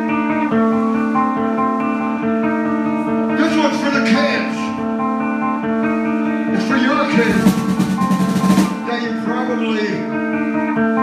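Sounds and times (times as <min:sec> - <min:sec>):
drums and cymbals: 0:07.1 - 0:09.0.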